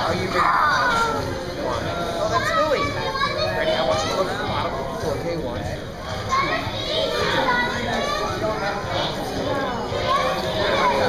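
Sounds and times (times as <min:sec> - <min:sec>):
children talking and calling out: 0:00.0 - 0:05.2, 0:06.0 - 0:11.0.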